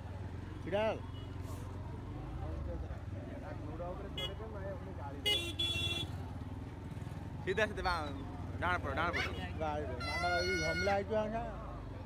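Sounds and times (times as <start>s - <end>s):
voices: 0.1s - 12.0s
vehicle horn tooting: 5.2s - 6.2s, 9.2s - 11.0s.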